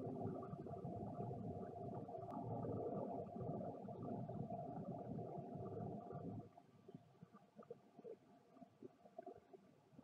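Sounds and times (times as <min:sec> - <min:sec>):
faint steady tone: 0:00.0 - 0:10.0.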